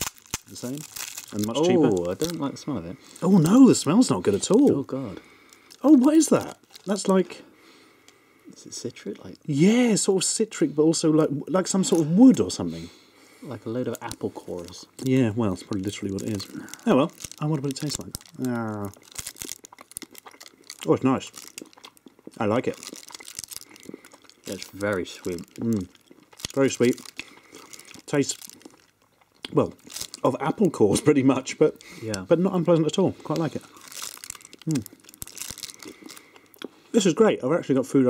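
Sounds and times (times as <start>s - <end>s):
plastic wrapper crinkling: 0.0s - 7.4s, 13.9s - 30.8s, 31.8s - 36.6s.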